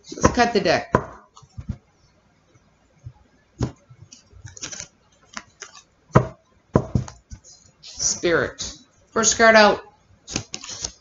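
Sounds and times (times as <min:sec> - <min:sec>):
cards tapping and clicking: 0:03.6 - 0:07.5, 0:10.3 - 0:11.0
cards rustling: 0:04.1 - 0:05.9, 0:10.3 - 0:11.0.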